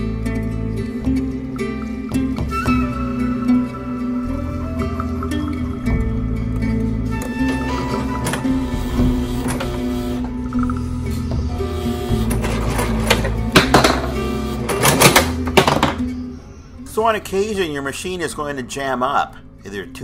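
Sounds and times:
background music with steady beat: 0.0 - 20.0.

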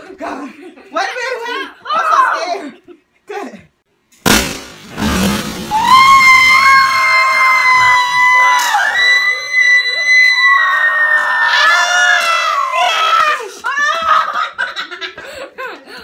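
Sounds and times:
balloon bursting with sharp pop: 4.2 - 6.2
high-pitched screams: 5.0 - 13.8.

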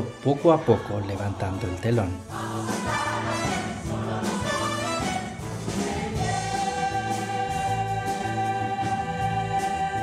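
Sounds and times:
instrumental backing: 0.0 - 10.0.

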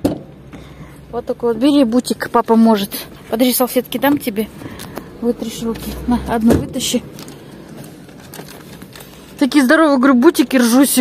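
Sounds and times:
plastic packet crinkling: 7.1 - 9.4.

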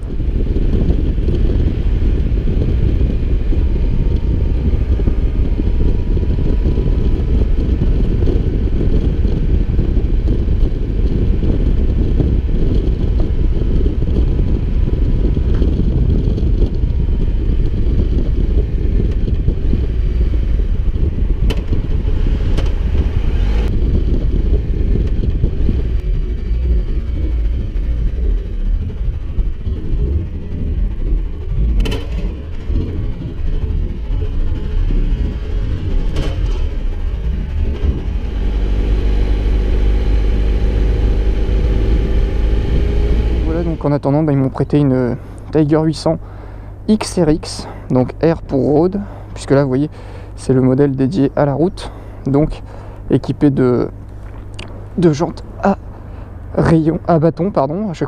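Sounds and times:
motorcycle engine: 0.0 - 45.6
wind buffeting microphone: 0.0 - 58.0.

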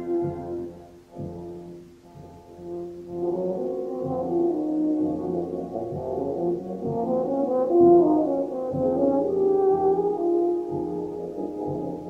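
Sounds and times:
concert band playing: 0.0 - 12.0
euphonium holding notes: 0.0 - 12.0.

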